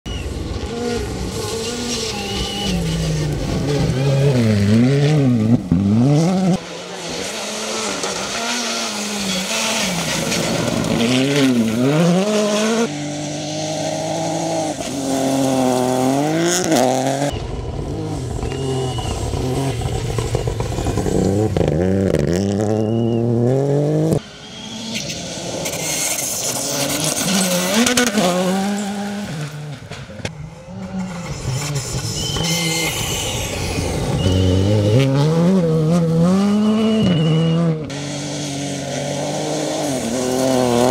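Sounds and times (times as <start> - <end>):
rally car engines revving: 0.1 - 40.9.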